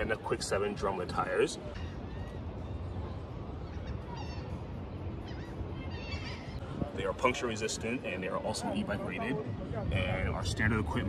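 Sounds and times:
low outdoor rumble: 0.0 - 11.0
birds calling: 0.9 - 6.8.

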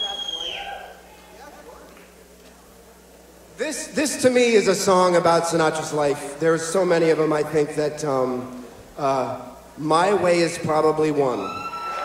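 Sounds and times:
loud whistle sliding down: 0.0 - 0.9
faint crowd murmur: 0.0 - 3.6.

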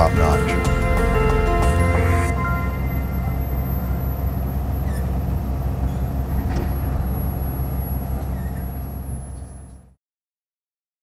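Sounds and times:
boat engine rumbling: 0.0 - 9.9.

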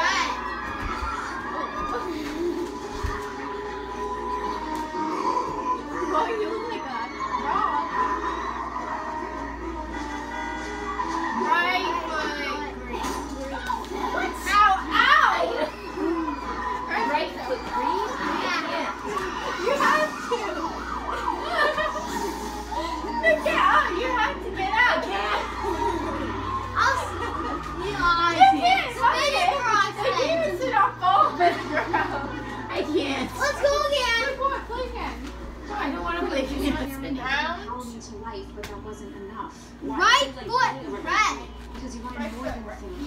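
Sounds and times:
children calling and squealing: 0.0 - 36.4.

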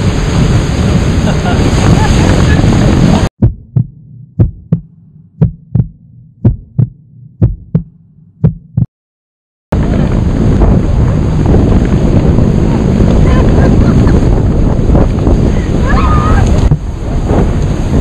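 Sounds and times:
rushing water: 0.0 - 3.3, 9.8 - 18.0
wind on microphone: 0.0 - 3.3, 9.7 - 18.0
heartbeat thumps: 3.4 - 8.9.

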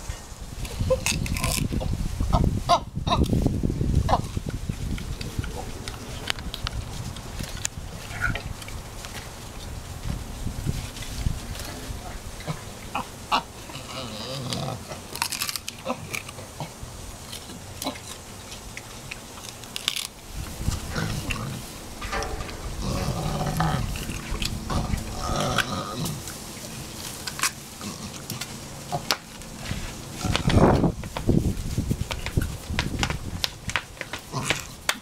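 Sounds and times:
clicks and knocks: 22.0 - 25.0.

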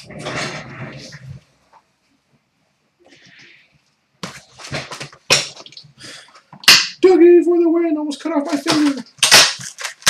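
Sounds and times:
cardboard rustling and scraping: 4.2 - 5.3
packs ripping: 8.4 - 10.0.

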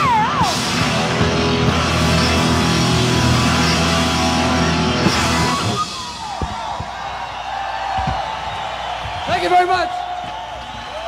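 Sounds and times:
electric guitar sustained chords: 0.0 - 6.1
live rock band playing: 0.0 - 6.7.

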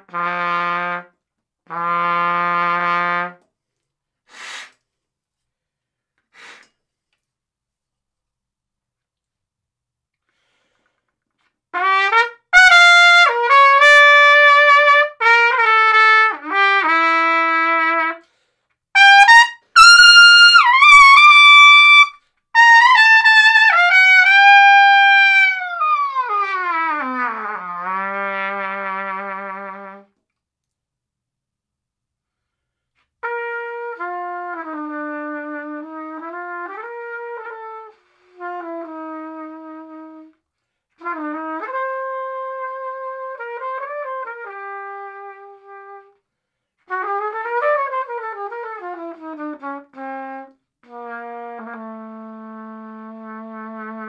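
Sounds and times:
trumpet playing: 0.0 - 3.5, 11.7 - 30.1, 33.2 - 40.3, 41.0 - 46.2, 46.9 - 54.0.

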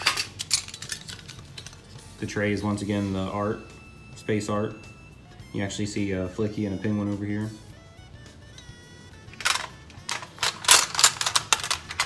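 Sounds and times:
metal pencil case clicks and clinks: 9.3 - 12.0.

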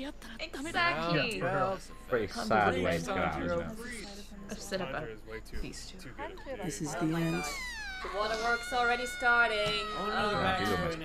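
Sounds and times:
high-pitched voice whining: 7.0 - 11.0
long falling wail: 7.3 - 11.0.

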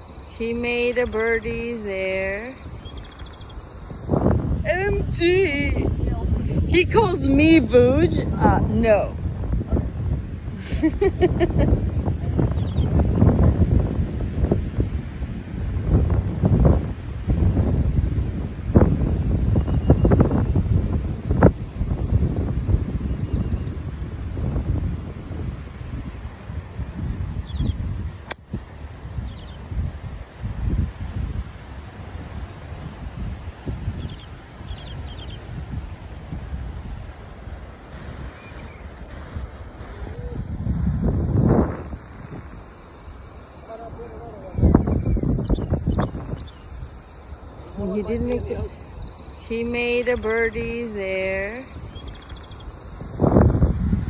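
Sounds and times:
small birds chirping: 0.0 - 9.0, 10.1 - 13.3, 14.0 - 18.2, 19.5 - 21.5, 23.0 - 28.4, 29.2 - 31.4, 33.2 - 35.6, 36.8 - 54.0
wind buffeting microphone: 0.0 - 54.0
golf ball struck crack: 28.2 - 28.7.

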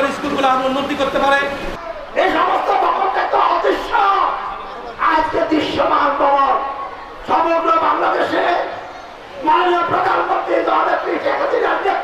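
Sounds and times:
man shouting over public address: 0.0 - 12.0.

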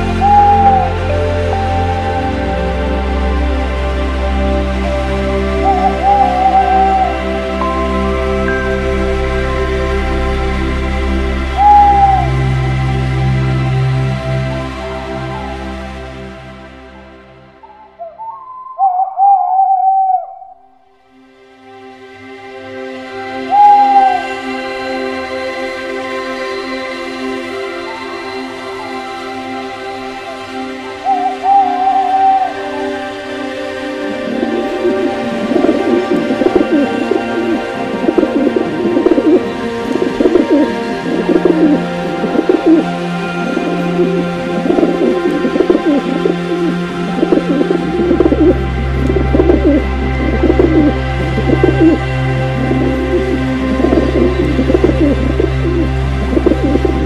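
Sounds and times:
pigeons cooing: 0.0 - 3.0, 5.6 - 7.3, 17.6 - 20.5, 34.0 - 57.0
soft background music: 0.0 - 57.0
wavering whistled bird call: 17.6 - 20.7.

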